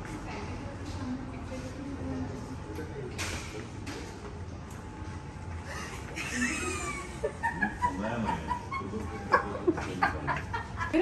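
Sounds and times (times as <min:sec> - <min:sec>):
woman laughing hard: 0:05.7 - 0:09.5.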